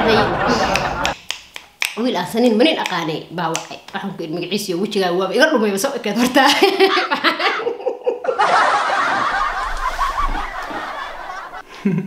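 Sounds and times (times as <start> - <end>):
people laughing: 0.0 - 1.2, 6.5 - 12.0.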